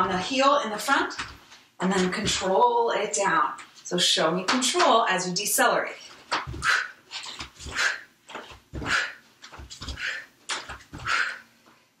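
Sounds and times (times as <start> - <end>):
bare feet thudding on floor: 0.0 - 2.6, 6.1 - 11.3
sharp exhaled breath: 11.0 - 11.5.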